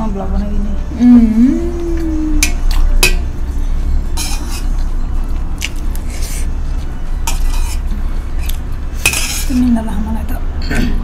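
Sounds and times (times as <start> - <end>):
spoon clinking on metal plate: 8.4 - 9.5.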